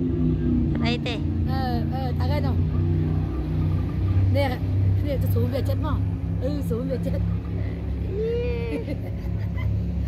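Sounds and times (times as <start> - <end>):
jet boat engine drone: 0.0 - 10.0.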